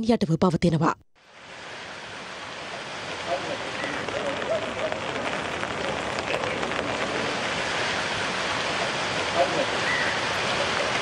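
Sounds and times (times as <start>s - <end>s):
rain falling on water: 1.2s - 11.0s.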